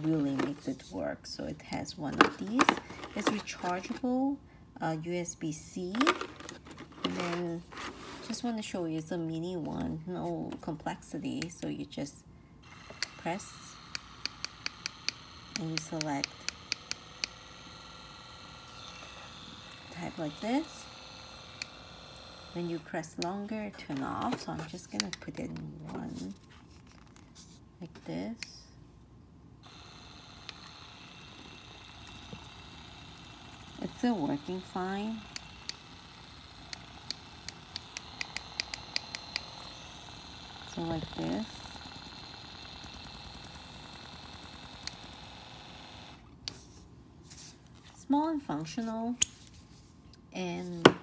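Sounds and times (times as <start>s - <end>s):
massage gun motor running: 0.0s - 0.8s, 1.8s - 4.0s, 5.9s - 8.5s, 12.6s - 25.2s, 29.6s - 46.6s.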